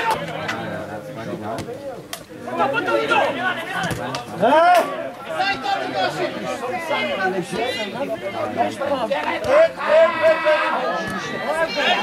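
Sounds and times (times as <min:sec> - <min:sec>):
voices calling and talking: 0:00.0 - 0:12.0.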